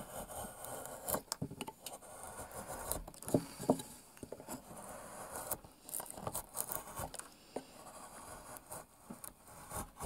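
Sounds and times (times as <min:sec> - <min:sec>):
chisel cutting into wood: 0:00.0 - 0:01.3, 0:09.4 - 0:10.0.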